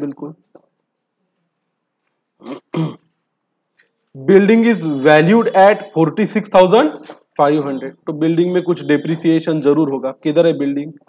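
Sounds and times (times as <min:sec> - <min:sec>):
man clearing his throat: 0:02.4 - 0:03.1.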